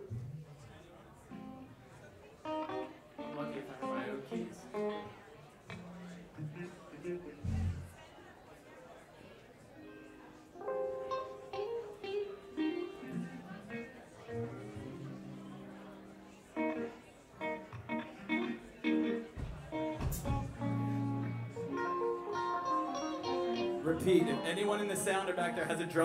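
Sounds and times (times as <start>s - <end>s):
bass guitar notes: 7.4s - 8.0s, 19.8s - 25.1s
electric guitar noodling: 10.6s - 26.0s.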